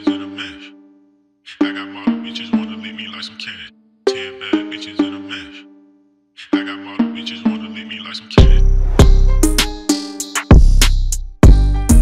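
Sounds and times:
low synth notes: 0:08.4 - 0:09.9.

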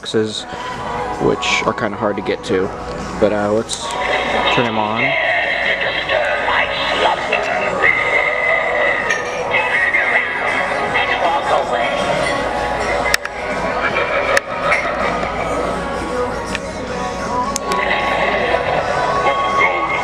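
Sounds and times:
voice over music: 0:00.0 - 0:20.0.

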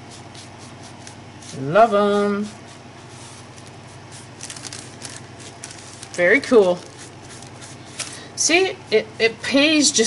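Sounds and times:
crinkly paper rustles: 0:03.3 - 0:08.2.

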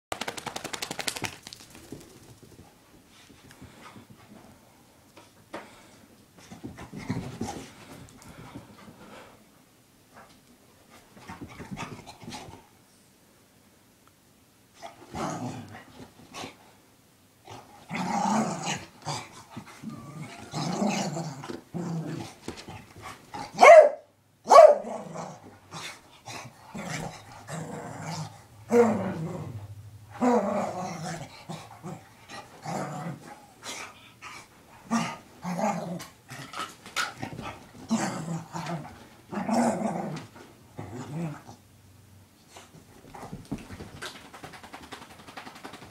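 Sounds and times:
dog shaking head rattle: 0:00.1 - 0:02.6, 0:43.6 - 0:45.9
dog growling and grumbling: 0:15.1 - 0:15.9, 0:17.5 - 0:22.4, 0:24.8 - 0:33.5, 0:34.8 - 0:41.6
dog barking: 0:23.6 - 0:24.9.

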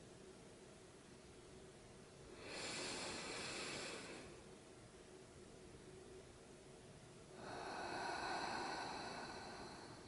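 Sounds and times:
person breathing out long: 0:07.4 - 0:10.0.

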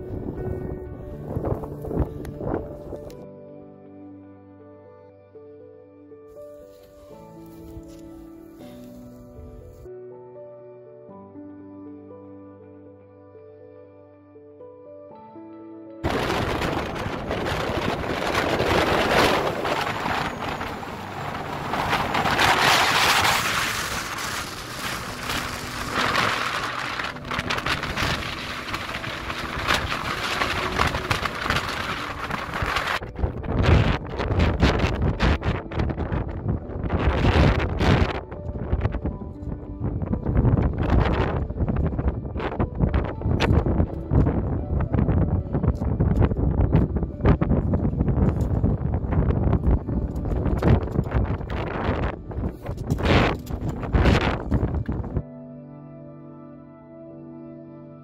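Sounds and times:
strong wind on microphone: 0:00.0 - 0:03.2, 0:16.0 - 0:55.2
faint music: 0:00.0 - 0:58.0.

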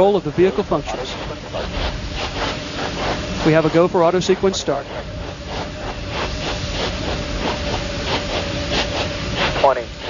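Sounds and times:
steady hissing noise: 0:00.0 - 0:10.0.

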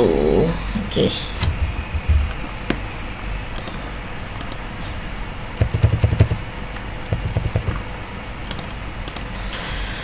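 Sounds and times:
computer controls clicking: 0:03.5 - 0:03.8, 0:04.4 - 0:04.6, 0:05.6 - 0:06.4, 0:07.0 - 0:07.8, 0:08.4 - 0:09.3.

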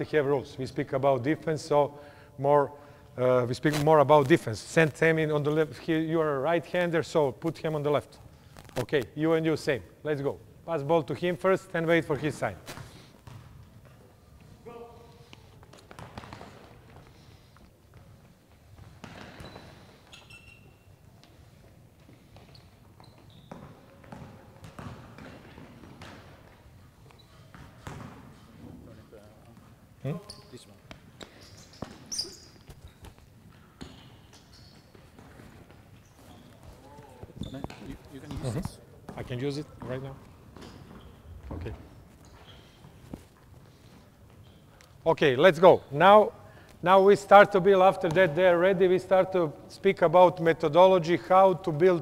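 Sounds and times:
basketballs bouncing on court: 0:12.7 - 0:14.0, 0:15.6 - 0:17.2, 0:17.9 - 0:20.3, 0:21.2 - 0:28.5, 0:33.0 - 0:43.0.

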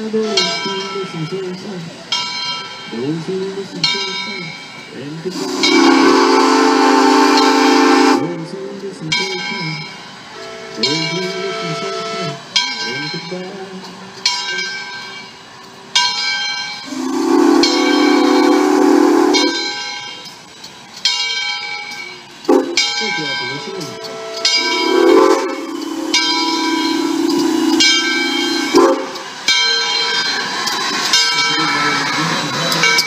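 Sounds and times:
locomotive bell ringing: 0:00.0 - 0:33.0
steam locomotive approaching: 0:00.0 - 0:33.0
steam whistle blasts: 0:05.3 - 0:08.4, 0:16.9 - 0:19.6, 0:24.1 - 0:29.2.

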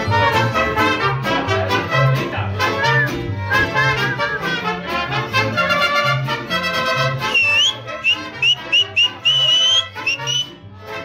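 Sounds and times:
low bass line: 0:00.0 - 0:08.0
strummed guitars: 0:00.0 - 0:11.0
trumpet phrases: 0:00.0 - 0:11.0.

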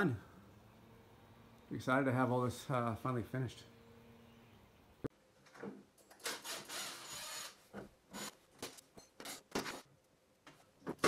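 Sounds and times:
cordless drill running: 0:06.2 - 0:07.6.

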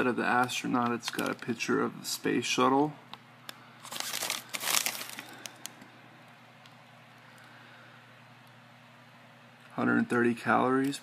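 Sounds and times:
foil pouch crinkling: 0:01.0 - 0:01.5, 0:03.8 - 0:05.8.

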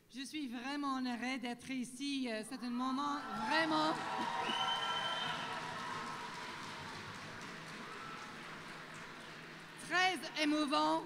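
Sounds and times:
audience applauding: 0:03.3 - 0:11.0.

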